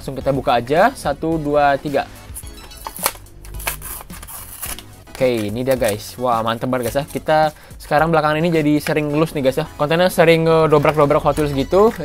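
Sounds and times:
quiet background music: 0:00.0 - 0:12.0
cardboard tearing: 0:02.8 - 0:06.0.

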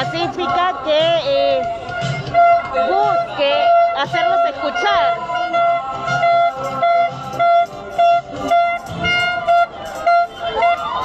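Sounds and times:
plastic horn blasts: 0:00.0 - 0:11.0.

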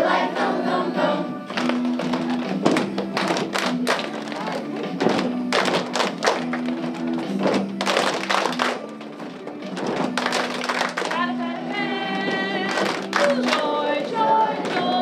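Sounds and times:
children's choir singing: 0:00.0 - 0:01.6, 0:11.2 - 0:15.0.

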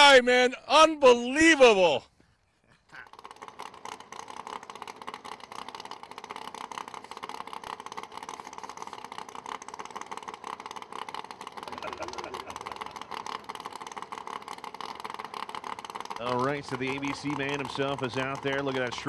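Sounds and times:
drag car engine idling: 0:02.8 - 0:19.0.

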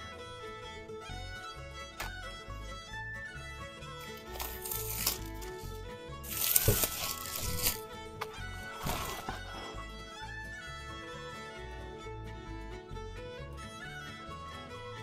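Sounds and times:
bowed strings music: 0:00.0 - 0:15.0
plastic wrap crinkling and tearing: 0:04.0 - 0:05.6, 0:06.2 - 0:07.8.

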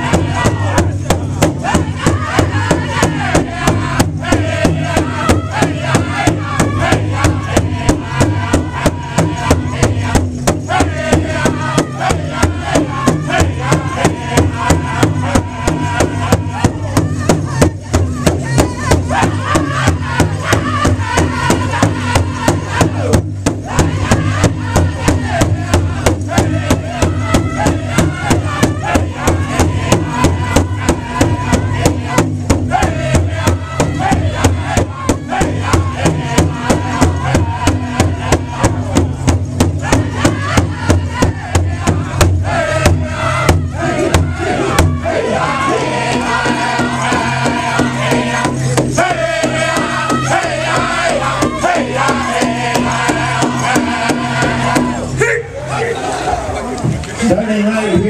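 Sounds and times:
large drum beaten in unison: 0:00.0 - 0:55.2
men singing together: 0:00.0 - 0:56.3.

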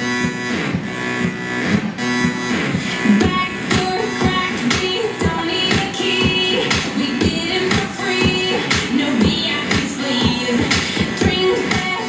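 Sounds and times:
pop music over speakers: 0:00.0 - 0:12.0.

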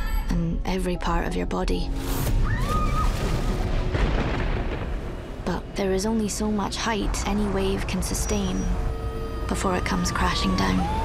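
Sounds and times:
film score music: 0:00.0 - 0:11.0
deep low rumble: 0:01.8 - 0:11.0
rising gliding tone: 0:07.0 - 0:11.0.

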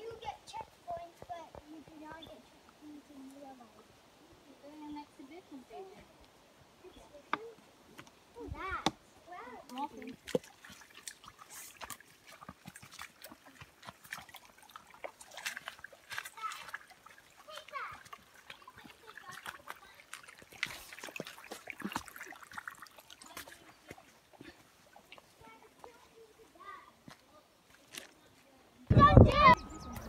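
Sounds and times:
footsteps on muddy trail: 0:05.6 - 0:09.0, 0:09.7 - 0:28.6
splashes in puddles: 0:09.3 - 0:28.5.

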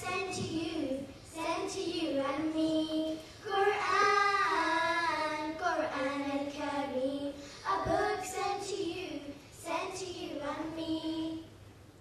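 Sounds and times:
children singing together: 0:00.0 - 0:11.5.

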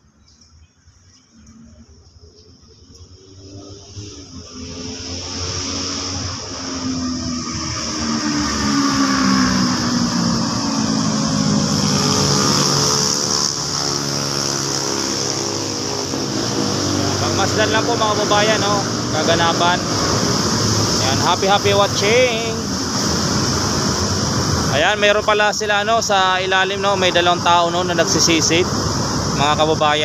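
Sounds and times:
motor engine running: 0:02.1 - 0:24.9.

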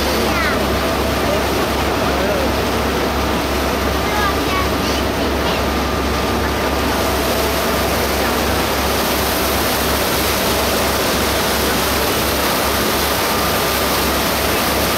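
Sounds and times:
boat engine drone: 0:00.0 - 0:14.9
propeller wake rushing: 0:00.0 - 0:14.9.

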